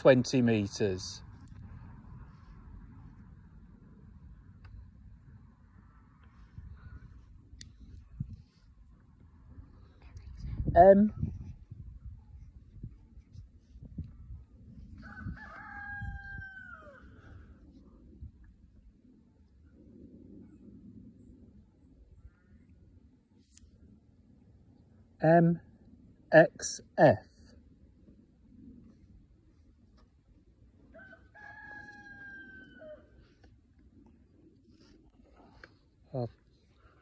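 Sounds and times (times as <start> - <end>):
rooster crowing: 15.0 - 17.2, 30.9 - 33.2.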